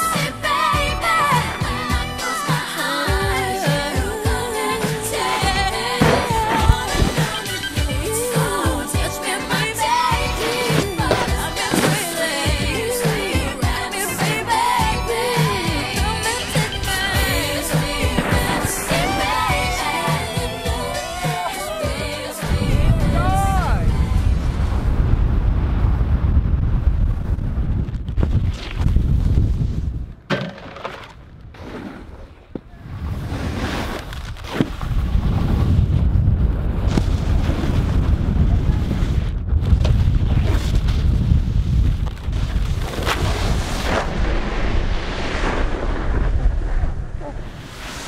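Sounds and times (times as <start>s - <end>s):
snowboards scraping on snow: 5.2s - 21.8s, 31.5s - 36.0s, 40.3s - 48.0s
wind buffeting microphone: 22.5s - 30.3s, 34.7s - 47.7s.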